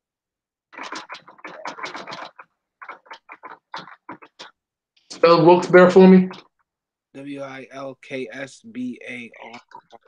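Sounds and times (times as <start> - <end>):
typing on a keyboard: 0.8 - 4.5.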